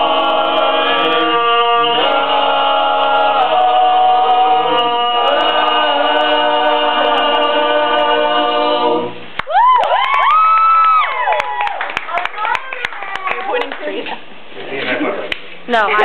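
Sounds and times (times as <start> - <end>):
boys singing in harmony: 0.0 - 9.2
people clapping: 9.4 - 14.2
people chattering: 12.1 - 16.0.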